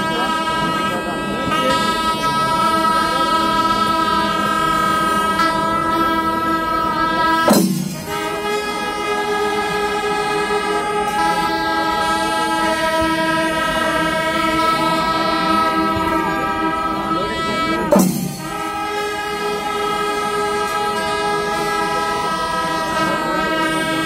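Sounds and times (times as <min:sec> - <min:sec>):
brass horns blaring chord: 0:00.0 - 0:24.0.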